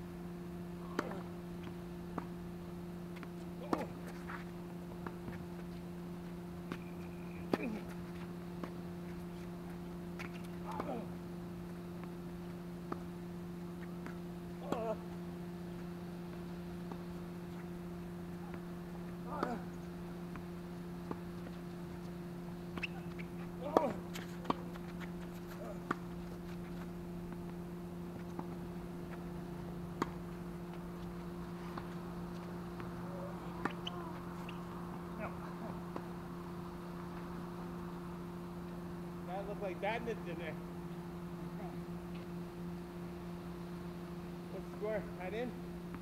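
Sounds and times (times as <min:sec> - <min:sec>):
steady low hum: 0:00.0 - 0:46.0
racket hitting ball: 0:00.9 - 0:01.3, 0:22.7 - 0:26.4, 0:31.5 - 0:36.1
tennis ball bouncing: 0:00.9 - 0:02.4, 0:03.2 - 0:04.4, 0:10.2 - 0:11.0, 0:15.6 - 0:27.6, 0:30.0 - 0:37.6.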